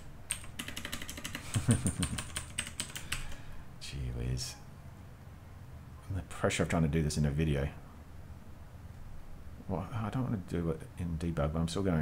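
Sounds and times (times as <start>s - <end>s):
computer keyboard typing: 0.0s - 3.4s.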